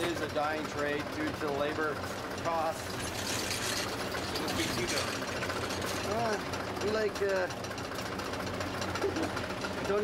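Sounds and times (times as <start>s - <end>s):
sewing machine humming and clattering: 0.0s - 10.0s.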